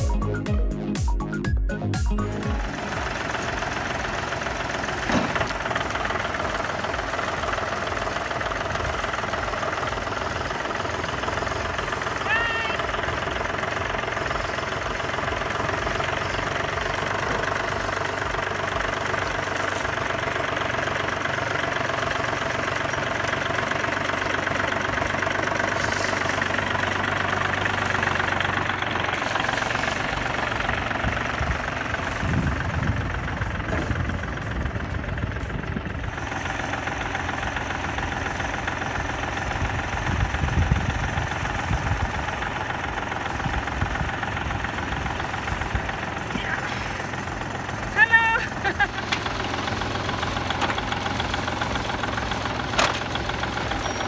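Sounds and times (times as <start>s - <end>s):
diesel tractor engine running: 0.0s - 54.0s
engine knocks: 0.0s - 54.0s.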